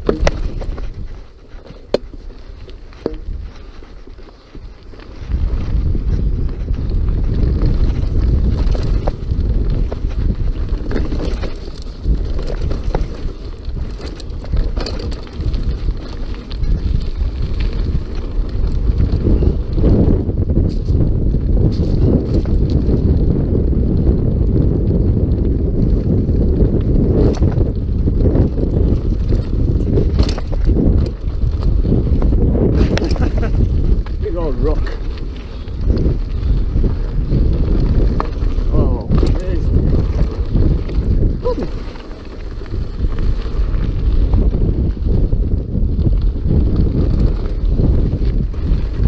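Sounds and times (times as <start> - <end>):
tyres crunching over gravel: 0.0 - 23.2, 25.4 - 49.0
bike rattling over bumps: 0.0 - 49.0
wind buffeting microphone: 0.0 - 49.0.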